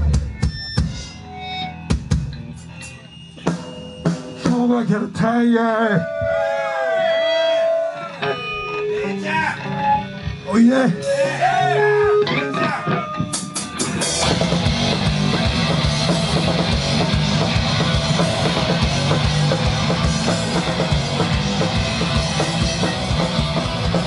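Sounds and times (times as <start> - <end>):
punk band playing: 0.0 - 24.0.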